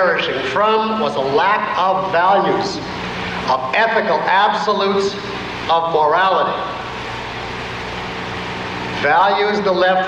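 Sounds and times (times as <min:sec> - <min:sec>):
low hum: 0:00.0 - 0:10.0
recording hiss: 0:00.0 - 0:10.0.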